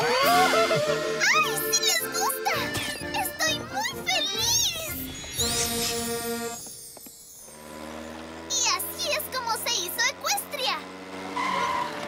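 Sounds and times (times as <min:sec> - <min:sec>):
cartoon high voices speaking: 0:01.2 - 0:05.0, 0:08.5 - 0:10.8
high-pitched squeal: 0:04.5 - 0:08.6.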